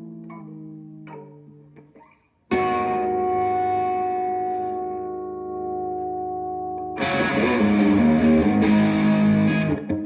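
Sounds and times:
electric guitar chord ringing: 0:02.5 - 0:10.0.

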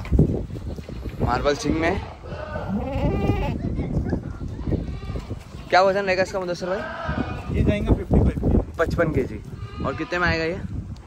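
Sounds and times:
goat bleating: 0:00.8 - 0:03.6, 0:09.5 - 0:10.4.

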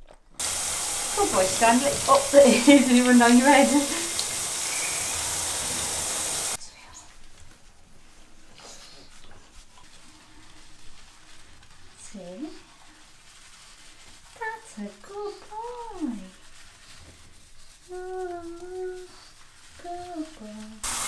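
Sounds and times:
hands rubbing wet fur: 0:00.4 - 0:21.0
shower water spraying: 0:00.4 - 0:21.0.

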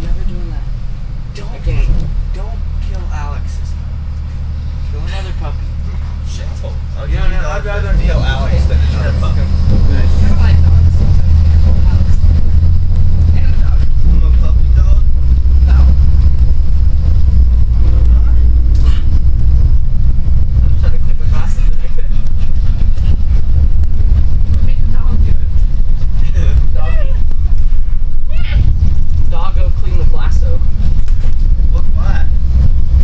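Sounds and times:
bus engine and road rumble: 0:00.0 - 0:33.0.

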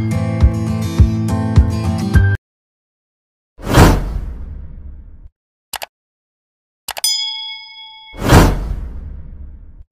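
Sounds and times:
notification bell ding: 0:07.0 - 0:08.4.

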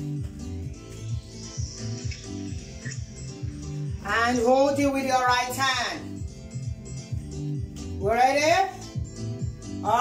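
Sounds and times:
background music with bass pulse: 0:00.0 - 0:10.0.

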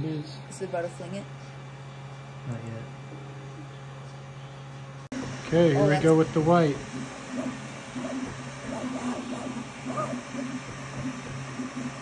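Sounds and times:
cooling fans humming: 0:00.0 - 0:12.0
stepper motors humming: 0:00.0 - 0:12.0.

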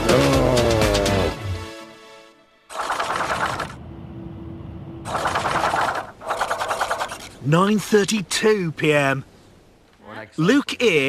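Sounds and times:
mechanical rattle sound effect: 0:02.7 - 0:03.8, 0:05.1 - 0:07.4
low hum: 0:02.7 - 0:07.5.

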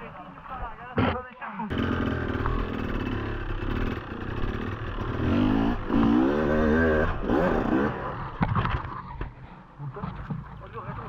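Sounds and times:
motorcycle engine revving: 0:01.7 - 0:08.4.

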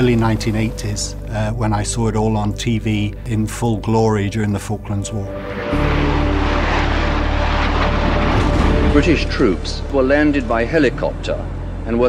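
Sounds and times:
jet aircraft passing overhead: 0:05.1 - 0:11.8.

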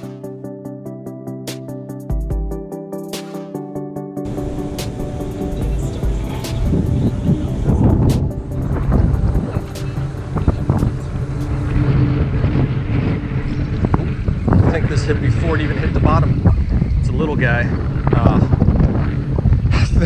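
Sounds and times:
background music: 0:00.0 - 0:14.3
motorboat engine drone: 0:04.2 - 0:17.0
wind buffeting microphone: 0:04.2 - 0:20.0.

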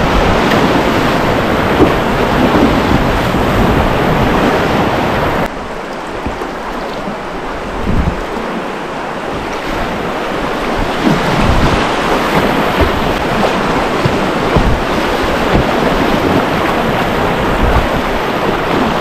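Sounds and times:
wind buffeting microphone: 0:00.0 - 0:05.5, 0:06.1 - 0:19.0
rushing river rapid: 0:00.0 - 0:19.0.

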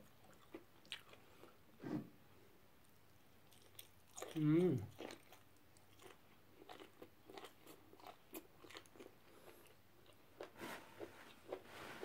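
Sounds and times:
wet chewing: 0:03.4 - 0:10.5.

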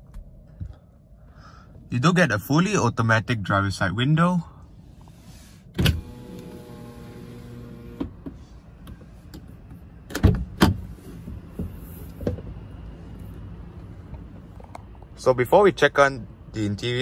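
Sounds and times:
power window motor hum: 0:05.8 - 0:08.2.

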